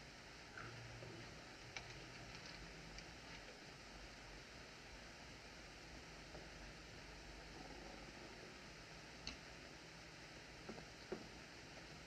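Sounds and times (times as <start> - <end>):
film soundtrack hiss: 0.0 - 12.0
faint clicks: 9.2 - 9.5.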